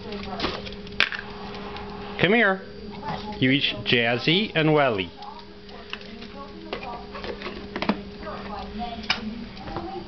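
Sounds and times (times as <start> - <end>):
steady low hum: 0.0 - 10.0
dogs chewing treats: 5.1 - 10.0.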